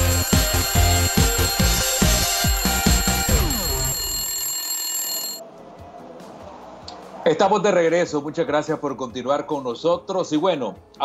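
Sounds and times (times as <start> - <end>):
electronic jingle with bell ringing: 0.0 - 5.4.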